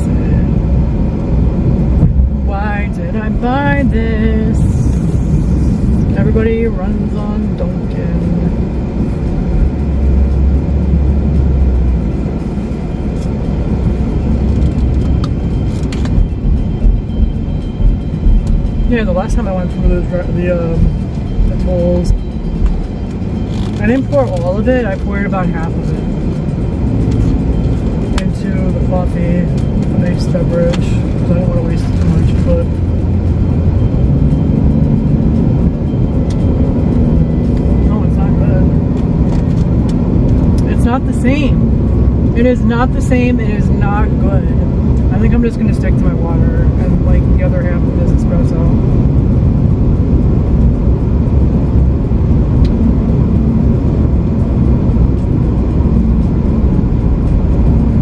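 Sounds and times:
car cabin road rumble: 0.0s - 58.0s.

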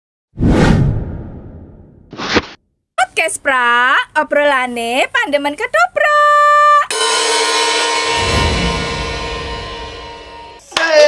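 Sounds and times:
deep whoosh: 0.4s - 2.5s.

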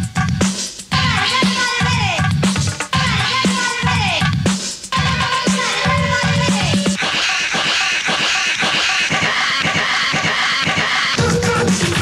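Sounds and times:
dance music bass line: 0.0s - 12.0s.

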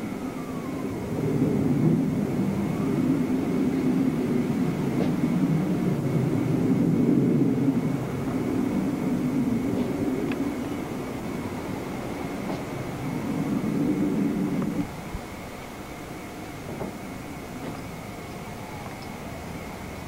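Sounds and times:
faint high whine: 0.0s - 20.0s
wind buffeting microphone: 0.0s - 20.0s.

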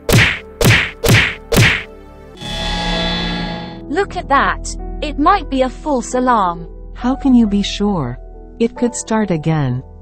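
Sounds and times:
cartoon punch whacks: 0.0s - 1.9s.

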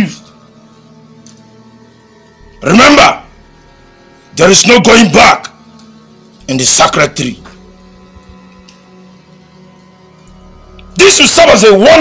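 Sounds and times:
faint music drone: 0.0s - 12.0s.

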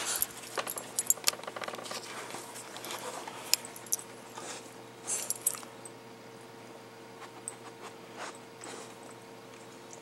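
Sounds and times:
dog collar tags clinking: 0.0s - 1.4s, 5.1s - 5.7s.

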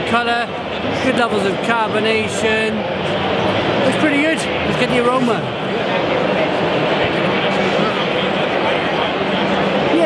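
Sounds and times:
crowd babble: 0.0s - 10.0s.

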